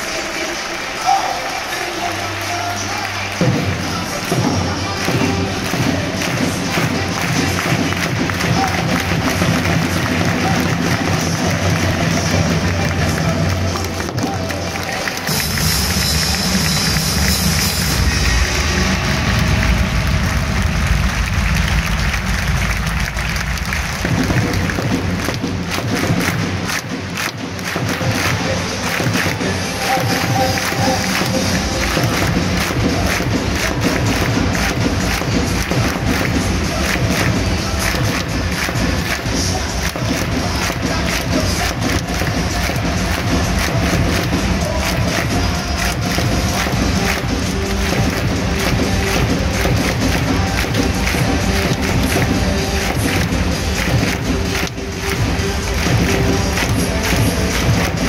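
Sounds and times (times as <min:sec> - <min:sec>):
music playing: 0:00.0 - 0:58.0
stadium crowd noise: 0:00.0 - 0:58.0.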